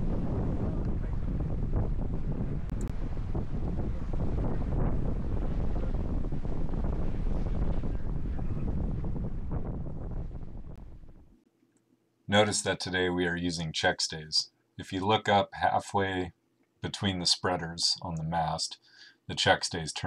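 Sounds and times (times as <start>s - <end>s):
wind buffeting microphone: 0.0s - 11.3s.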